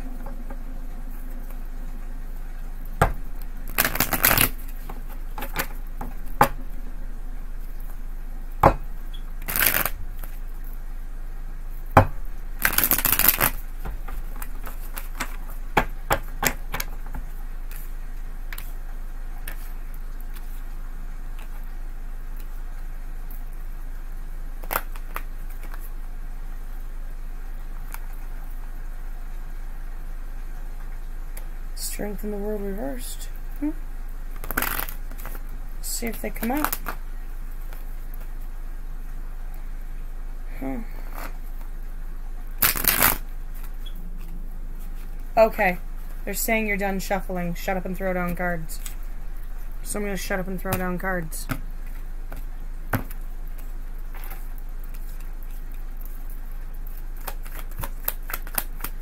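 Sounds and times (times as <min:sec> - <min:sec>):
low hum: 0:00.0 - 0:24.6, 0:25.9 - 0:57.4
cards being shuffled: 0:03.4 - 0:06.5, 0:09.1 - 0:10.4, 0:12.6 - 0:17.9, 0:34.4 - 0:37.0, 0:42.6 - 0:45.3, 0:50.7 - 0:59.0.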